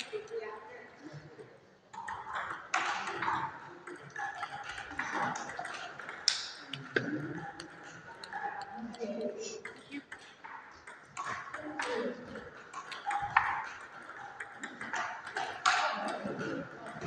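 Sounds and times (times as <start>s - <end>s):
table tennis ball clicking: 1.9s - 17.0s.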